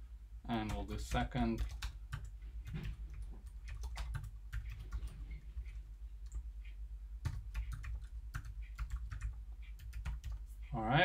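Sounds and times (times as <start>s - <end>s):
typing on computer keyboard: 0.6s - 6.5s, 7.2s - 10.4s.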